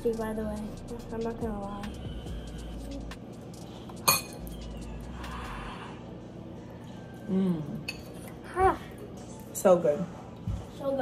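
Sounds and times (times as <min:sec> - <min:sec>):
metal spoon clinking ceramic bowl: 0:04.0 - 0:04.4.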